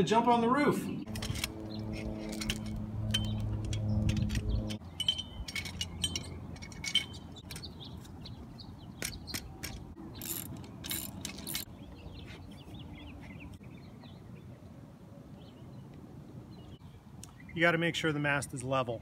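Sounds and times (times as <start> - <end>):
low hum: 0.9 - 7.7
metal hardware clinking: 1.1 - 8.2, 9.0 - 11.7.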